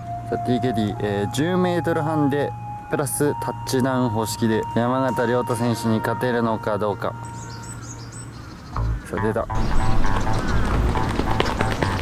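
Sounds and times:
small birds chirping: 3.8s - 12.0s.

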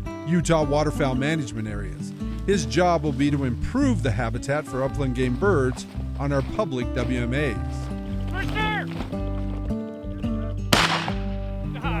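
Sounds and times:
background music: 0.0s - 12.0s
shotgun shot: 10.7s - 11.4s.

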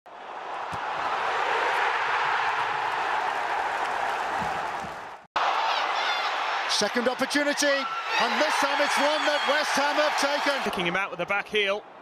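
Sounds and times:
stadium crowd roar: 0.1s - 12.0s
crowd applause: 0.3s - 10.8s.

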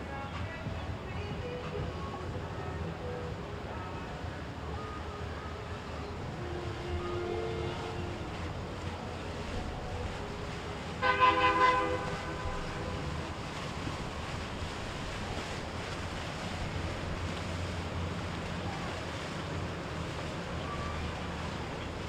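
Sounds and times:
boat motors rumbling: 0.0s - 22.0s
churning water: 0.0s - 22.0s
horn blowing held note: 11.0s - 13.0s.

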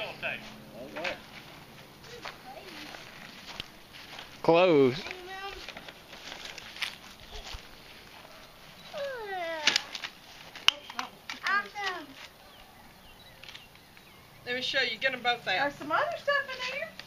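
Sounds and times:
high-pitched wordless vocal calls: 8.8s - 9.8s.

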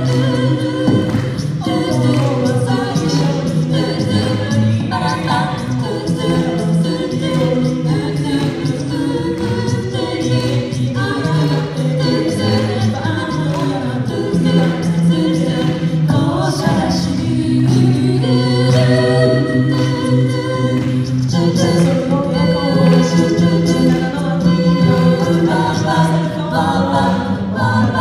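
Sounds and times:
a cappella group singing pop song: 0.0s - 28.0s.

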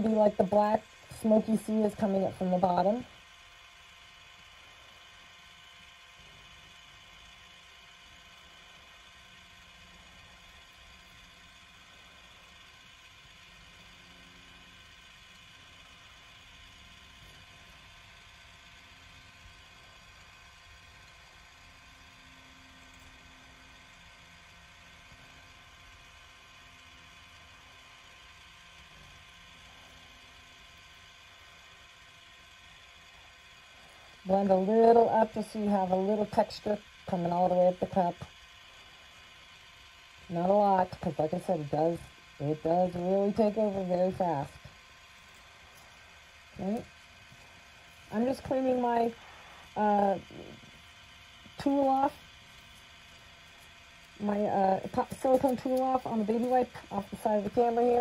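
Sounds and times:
small electric motor whirring: 0.0s - 58.0s.

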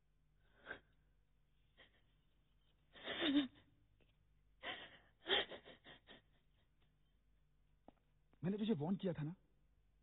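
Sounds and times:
woman sobbing: 1.7s - 3.8s, 4.6s - 6.9s.

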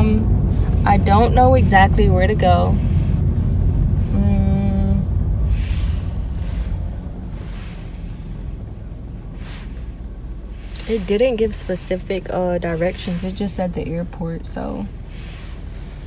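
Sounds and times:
road and engine rumble in car: 0.0s - 16.0s.

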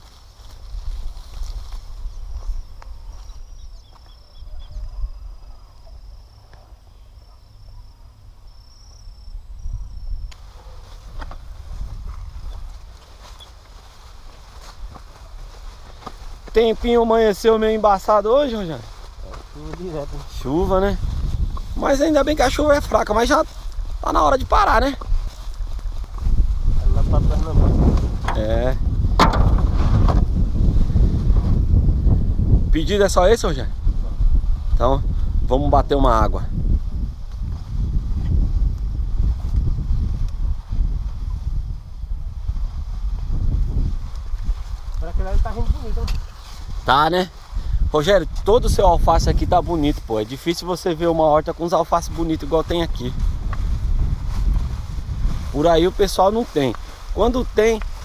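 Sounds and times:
wind buffeting microphone: 0.0s - 6.2s, 8.2s - 58.0s
constant low rumble: 24.9s - 32.8s
plastic crate knocking: 29.2s - 29.7s.

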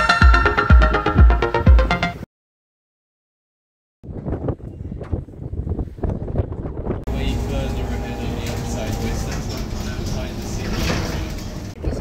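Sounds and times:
bus engine and road rumble: 4.0s - 12.0s
outdoor street sound: 4.0s - 12.0s
voices: 7.1s - 12.0s.

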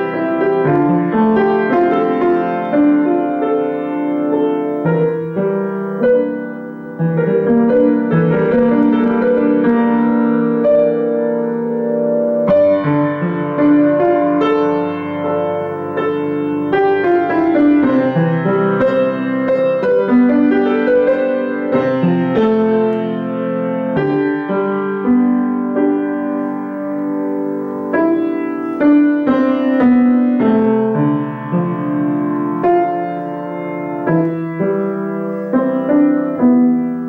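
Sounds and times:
grand piano improvising: 0.0s - 37.0s.

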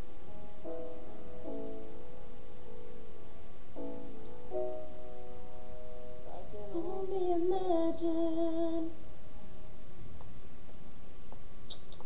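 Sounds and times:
piano chords: 0.0s - 12.0s.

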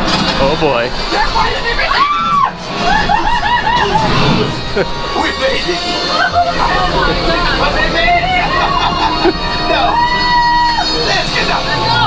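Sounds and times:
loud ride soundtrack music: 0.0s - 12.0s.

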